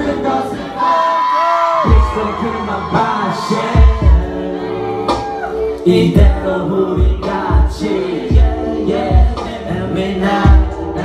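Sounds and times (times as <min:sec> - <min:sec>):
live pop music with singing: 0:00.0 - 0:11.0.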